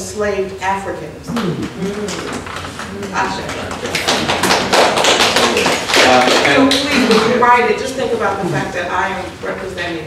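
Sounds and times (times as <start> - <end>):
audience applause: 3.7 - 6.8.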